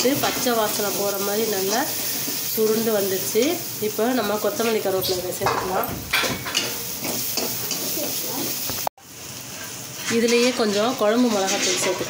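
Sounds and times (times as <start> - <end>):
masala sizzling in a pan: 0.0 - 12.0
spatula stirring and scraping: 9.6 - 12.0.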